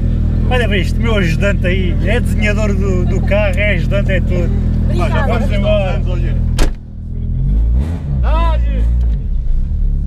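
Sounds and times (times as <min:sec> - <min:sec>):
car engine revving: 0:00.0 - 0:10.0
car door slamming: 0:06.5 - 0:06.9.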